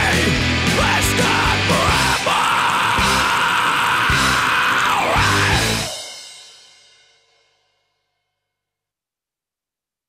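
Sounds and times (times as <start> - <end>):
metal band playing: 0.0 - 6.6.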